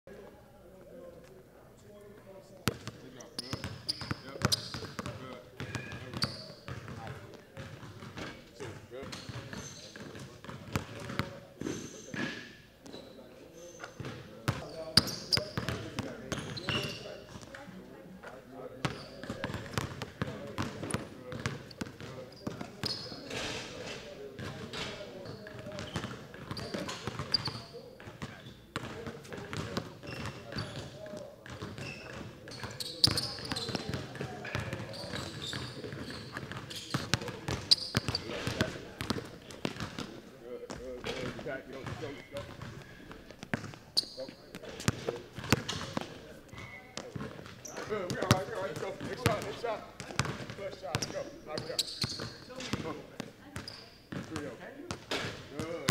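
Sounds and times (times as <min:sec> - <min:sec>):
people talking: 0:00.1 - 0:55.9
basketball bouncing on hardwood: 0:50.0 - 0:51.1.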